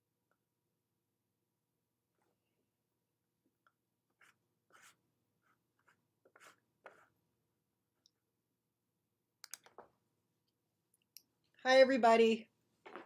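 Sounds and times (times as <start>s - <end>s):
sharp clicks: 9.4s - 9.8s.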